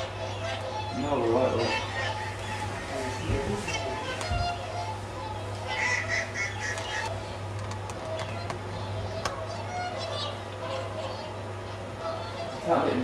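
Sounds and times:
steady low hum: 0.0s - 13.0s
swans honking: 0.0s - 13.0s.

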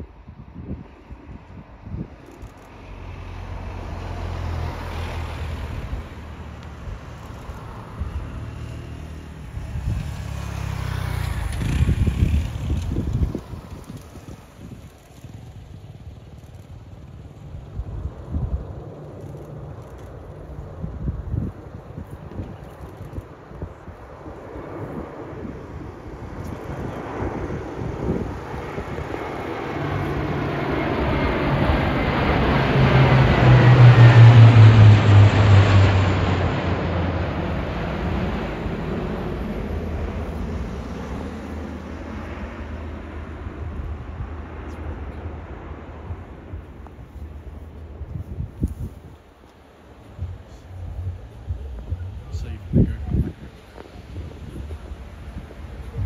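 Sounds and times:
wind buffeting microphone: 0.0s - 3.8s, 5.4s - 56.0s
turboprop aircraft flying over: 0.0s - 56.0s.

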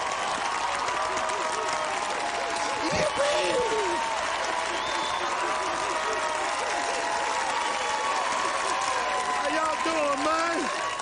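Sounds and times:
audience clapping: 0.0s - 11.0s
crowd cheering and hooting: 0.0s - 11.0s.

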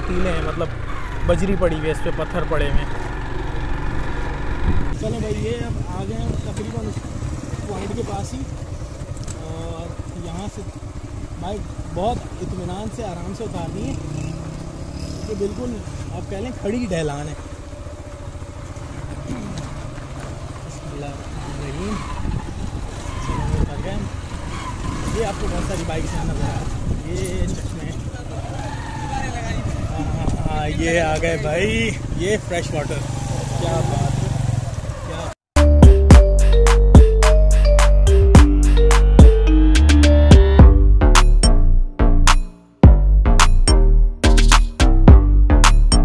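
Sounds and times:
motorcycle engine running: 0.0s - 35.0s
rumble of ride on gravel: 0.0s - 35.3s.

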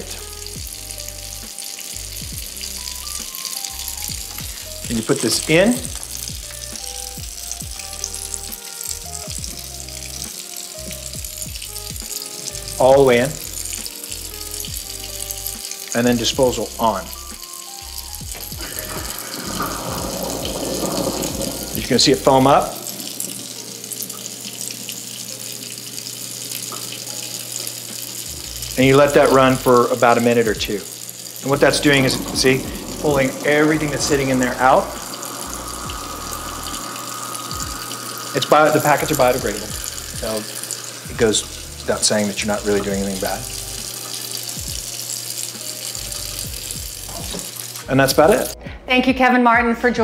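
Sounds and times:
garbage disposal humming: 0.0s - 48.6s
tap water running into sink: 0.0s - 48.6s.

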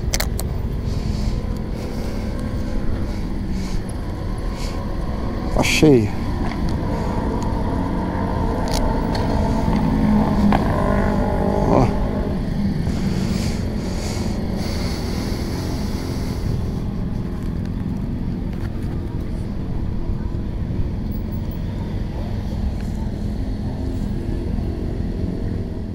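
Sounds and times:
motorcycle engine rev: 0.0s - 17.9s
motorcycle engine idling: 0.0s - 25.9s.

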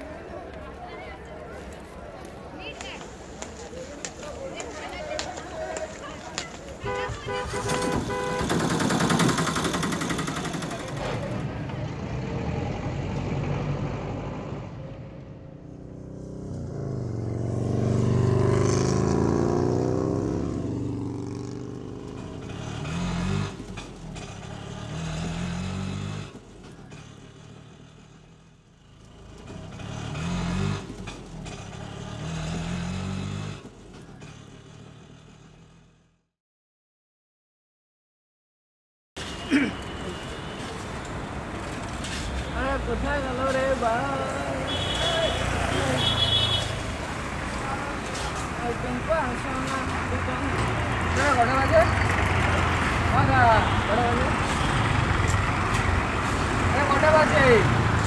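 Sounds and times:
street noise: 0.0s - 36.2s, 39.2s - 58.0s
motor vehicle passing: 7.4s - 36.2s.

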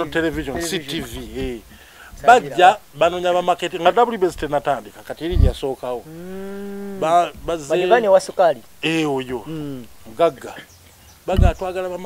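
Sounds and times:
man speaking: 0.0s - 10.6s, 11.3s - 12.0s.

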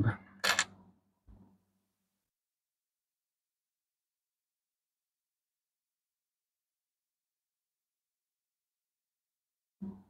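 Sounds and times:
coins clinking together: 0.4s - 0.7s.

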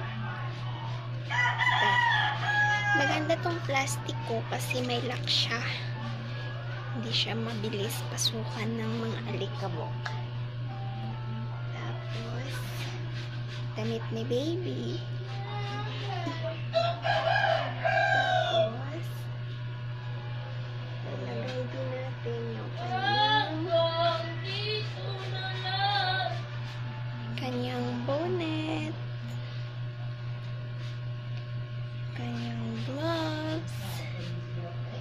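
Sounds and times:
rooster crowing: 1.3s - 3.6s, 16.7s - 19.0s.

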